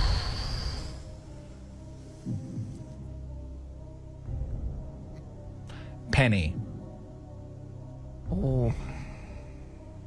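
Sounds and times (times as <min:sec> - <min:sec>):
low humming drone: 0:00.0 - 0:06.0.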